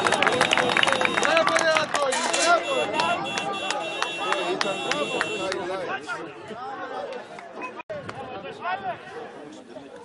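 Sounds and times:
sharp claps: 0.0 - 5.6
crowd of voices talking and calling: 0.0 - 10.0.

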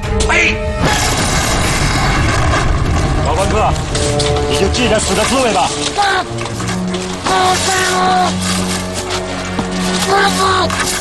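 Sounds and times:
deep rumble: 0.0 - 7.7.

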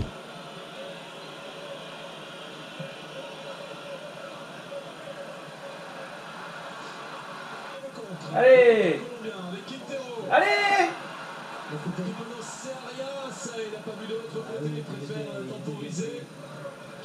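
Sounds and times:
stadium crowd noise on tv: 0.0 - 17.0.

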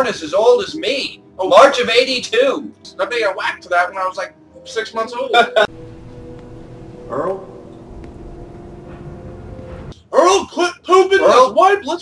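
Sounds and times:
low droning soundtrack hum: 5.7 - 10.0.

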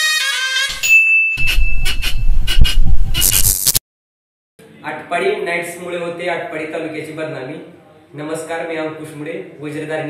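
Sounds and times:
high-pitched beep tone: 0.8 - 3.8.

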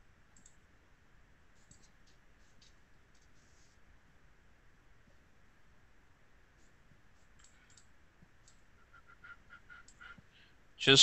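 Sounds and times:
computer keyboard and mouse clicks: 0.3 - 0.6, 1.6 - 3.3, 7.4 - 8.6.

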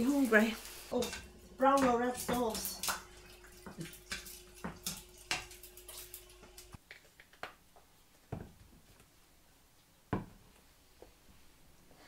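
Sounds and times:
pans and utensils clinking: 0.0 - 6.8.

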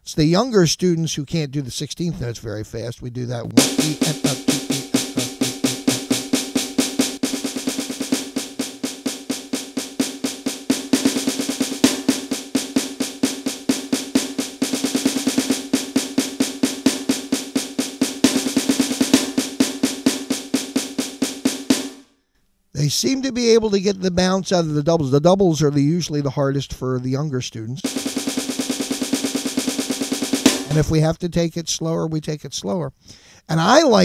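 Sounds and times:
electronic drum snare strokes: 3.6 - 22.0, 27.8 - 31.0.

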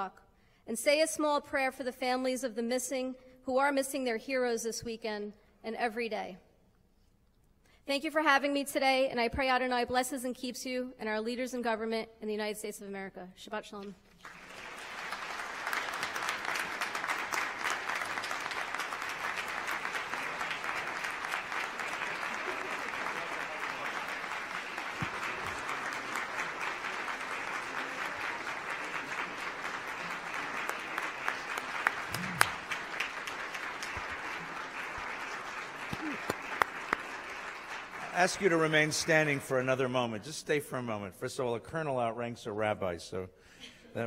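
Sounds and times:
audience applauding: 14.1 - 39.9.

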